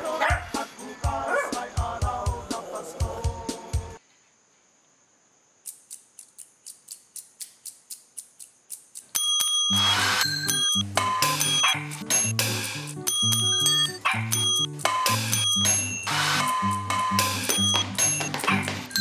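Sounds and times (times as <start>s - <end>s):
low pitched repeating pattern: 9.1s - 19.0s
struck pots and pans ringing: 9.2s - 19.0s.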